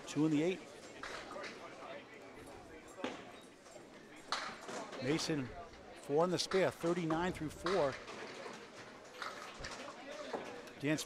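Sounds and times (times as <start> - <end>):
low murmur of bowling alley: 0.0 - 11.0
clatter of bowling pins: 6.5 - 10.6.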